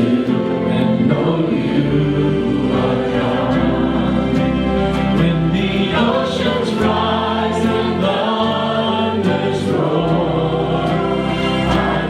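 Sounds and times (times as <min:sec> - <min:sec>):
bass guitar: 0:00.0 - 0:12.0
church band playing: 0:00.0 - 0:12.0
voices singing long notes: 0:00.0 - 0:12.0.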